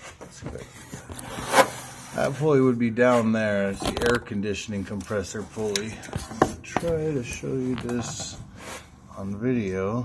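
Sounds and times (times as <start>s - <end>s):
hand rustling among engine parts: 2.3s - 10.0s.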